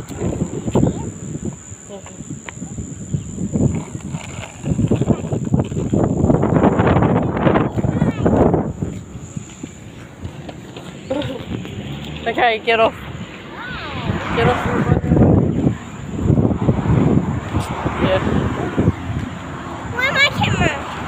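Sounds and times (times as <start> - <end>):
skateboard wheels rolling on concrete: 0.0 - 21.0.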